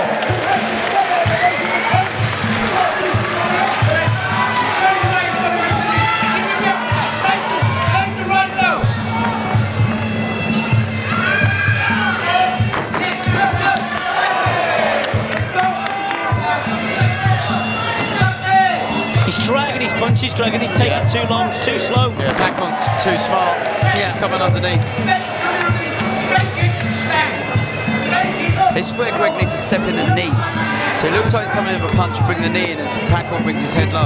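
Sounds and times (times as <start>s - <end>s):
crowd cheering and shouting: 0.0s - 34.0s
fight music: 0.0s - 34.0s.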